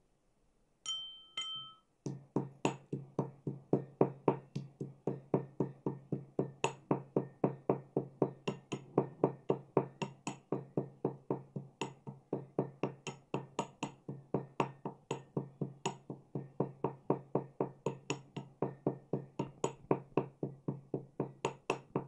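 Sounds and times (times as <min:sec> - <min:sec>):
metal pestle pounding in mortar: 0:02.0 - 0:22.0.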